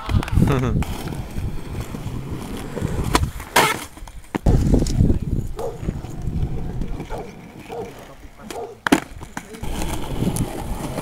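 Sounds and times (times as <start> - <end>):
skateboard wheels rolling on concrete: 0.0 - 11.0
skateboard clacks: 5.6 - 11.0.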